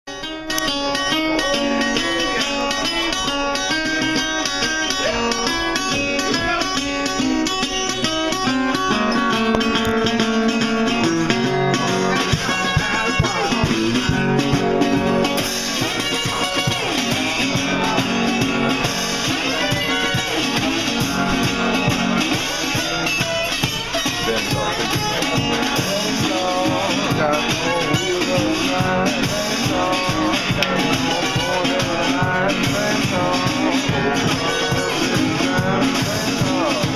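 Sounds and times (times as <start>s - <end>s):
acoustic guitar plucking: 0.1s - 36.9s.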